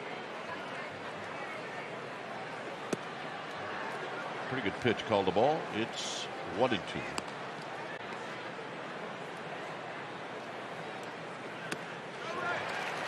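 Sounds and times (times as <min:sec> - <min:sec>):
crowd murmur: 0:00.0 - 0:13.0
crowd cheering: 0:02.5 - 0:08.6, 0:11.1 - 0:13.0
ball popping into mitt: 0:02.9 - 0:03.1.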